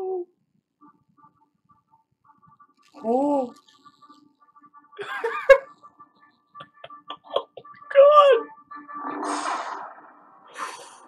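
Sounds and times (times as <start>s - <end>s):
faint steady hum: 0.0s - 10.9s.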